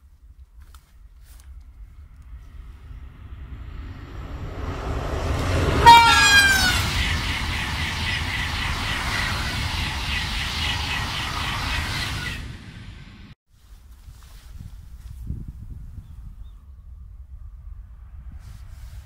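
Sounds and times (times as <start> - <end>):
high-speed train rushing past: 1.3 - 13.4, 16.8 - 19.0
falling pitch tone: 3.3 - 12.6.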